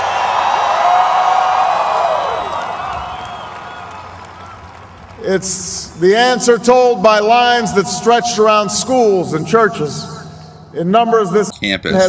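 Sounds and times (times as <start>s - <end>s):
long held cry: 0.0s - 4.7s
crowd cheering and whooping: 0.0s - 5.2s.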